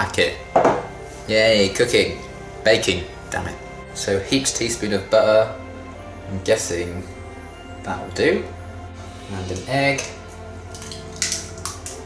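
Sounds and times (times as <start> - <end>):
background music: 0.0 - 12.0
eggshell cracking: 10.0 - 12.0.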